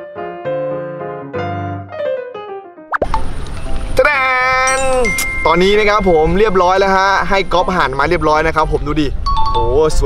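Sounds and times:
high-pitched held voice-like note: 4.0 - 5.4.

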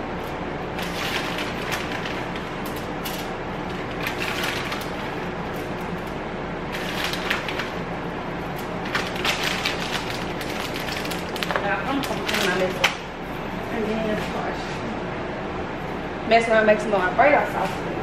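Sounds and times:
steady low hum: 0.0 - 18.0
plastic bag crinkling: 0.8 - 6.1, 6.7 - 7.9, 8.5 - 12.9.

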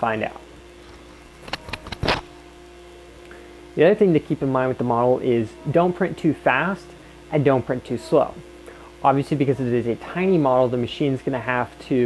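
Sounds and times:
three-d printer humming: 0.0 - 12.0.

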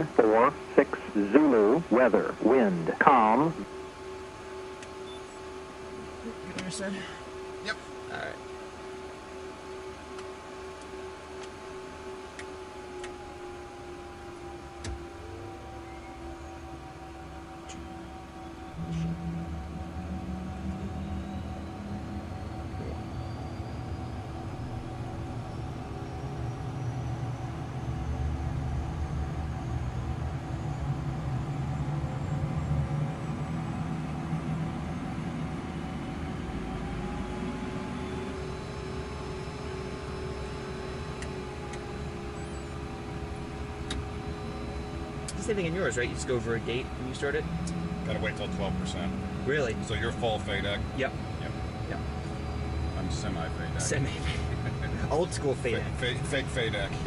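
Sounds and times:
jet engine whine rising: 0.0 - 57.0
low engine rumble: 0.0 - 57.0
steady hum tones: 0.0 - 57.0.

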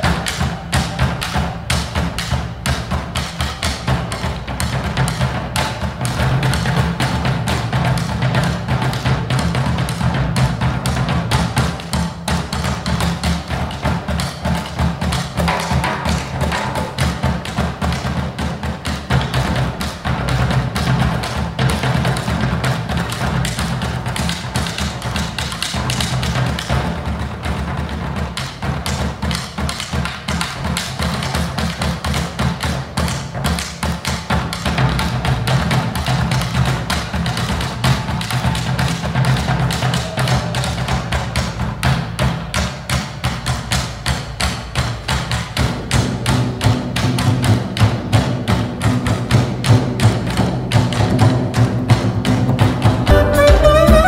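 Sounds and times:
drum ensemble playing: 0.0 - 54.0.

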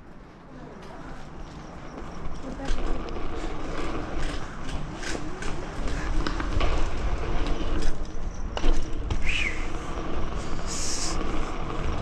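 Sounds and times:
bike tyres rolling on stone: 0.9 - 12.0.

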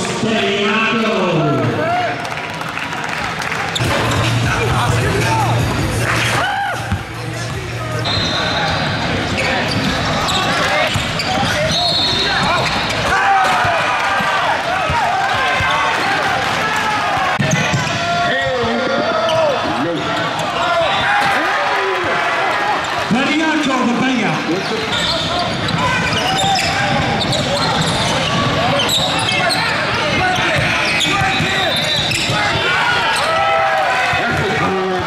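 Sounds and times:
crowd voices calling out: 3.4 - 35.0.

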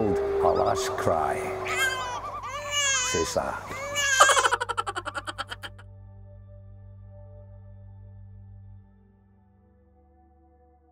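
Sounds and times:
man laughing: 3.7 - 5.8.

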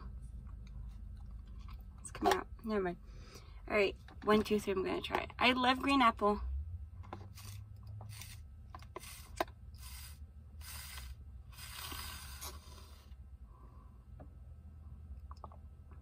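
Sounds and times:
low steady hum: 0.0 - 16.0
slurping through a straw: 9.0 - 13.1.

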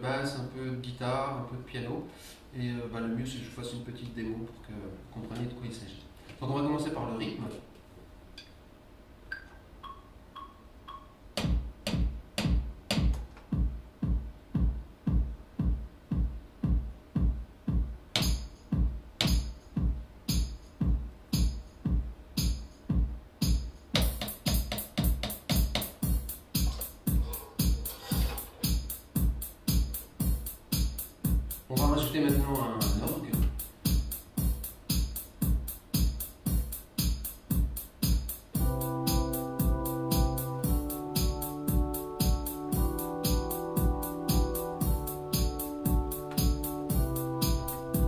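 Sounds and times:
metronome clicks: 9.3 - 13.4
electronic drum beat: 9.8 - 48.0.

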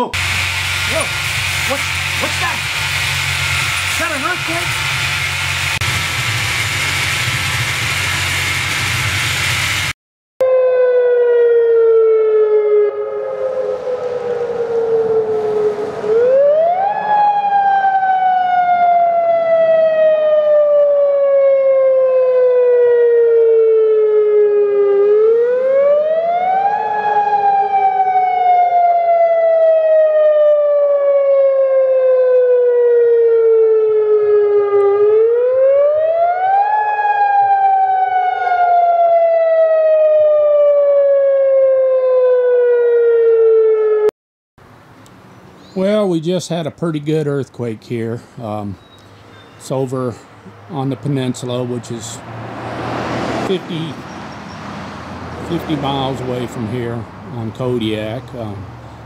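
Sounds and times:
warning siren wailing: 0.0 - 7.0, 10.4 - 44.2, 50.6 - 58.5.

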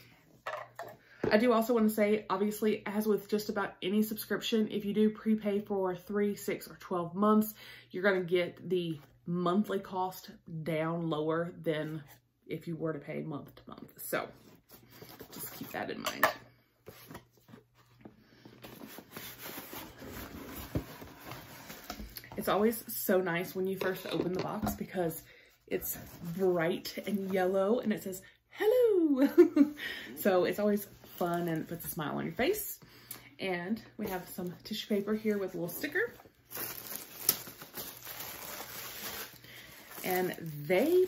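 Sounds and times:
tissue paper rustling: 18.6 - 21.9, 35.2 - 41.0
cardboard box rustling and scraping: 18.6 - 22.0.

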